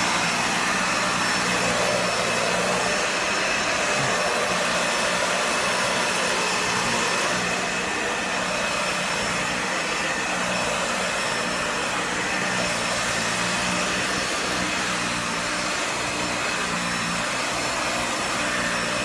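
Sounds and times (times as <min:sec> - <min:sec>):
vacuum cleaner running: 0:00.0 - 0:19.0.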